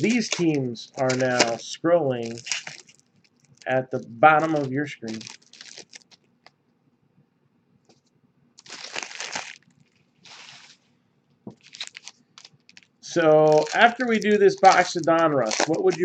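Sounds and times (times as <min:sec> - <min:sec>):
wrapping crinkling and tearing: 0:00.0 - 0:06.5, 0:08.6 - 0:16.0.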